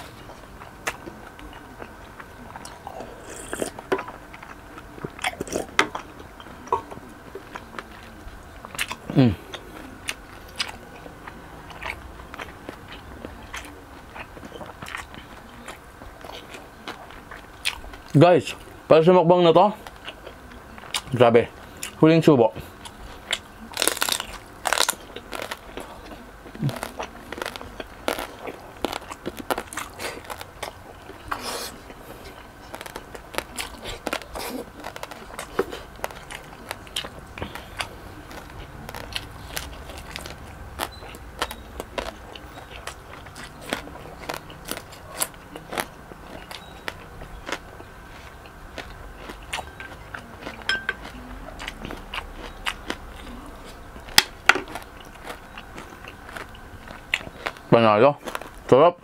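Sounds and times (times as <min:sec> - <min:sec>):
chewing crunchy food: 0:00.0 - 0:18.9, 0:19.6 - 0:59.0.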